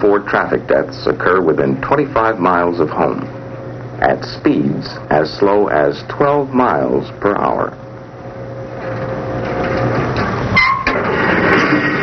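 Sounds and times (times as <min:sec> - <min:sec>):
sled rumbling down track: 0:08.8 - 0:12.0
brief squeal: 0:10.6 - 0:11.0.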